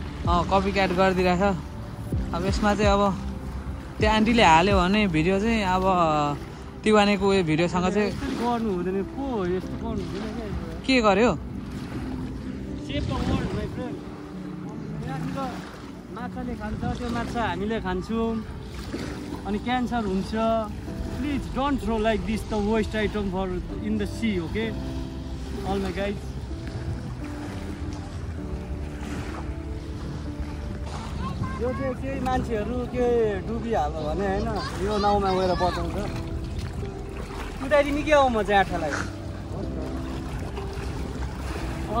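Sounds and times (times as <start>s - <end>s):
small waves lapping: 0.0s - 42.0s
wind rumbling on microphone: 0.0s - 42.0s
wind on microphone: 11.4s - 23.8s, 24.7s - 32.9s.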